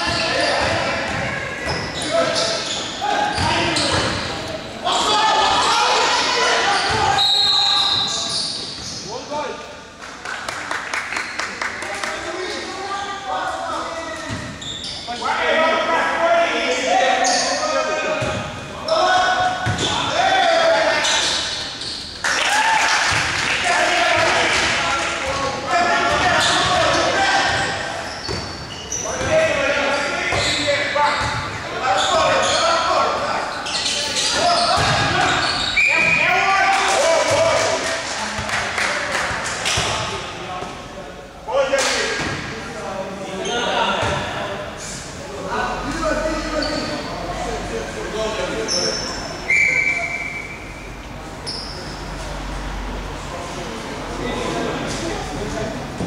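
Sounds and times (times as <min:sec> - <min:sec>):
voices calling and shouting: 0:00.0 - 0:09.7, 0:11.8 - 0:56.0.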